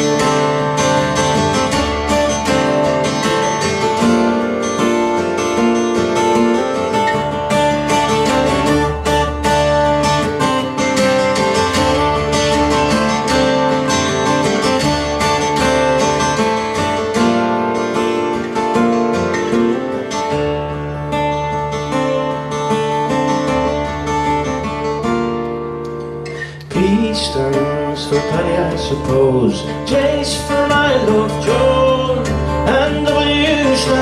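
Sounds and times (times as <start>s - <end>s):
two acoustic guitars playing folk: 0.0s - 34.0s.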